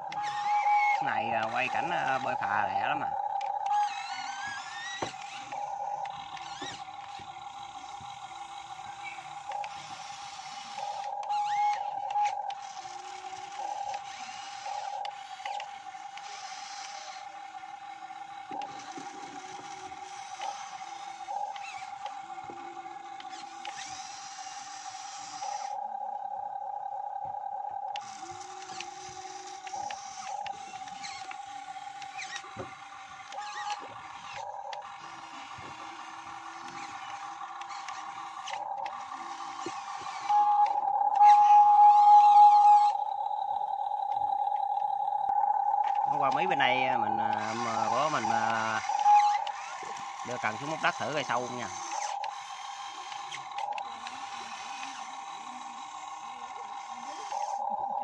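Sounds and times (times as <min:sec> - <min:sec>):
model excavator motors whining: 0:00.0 - 0:58.0.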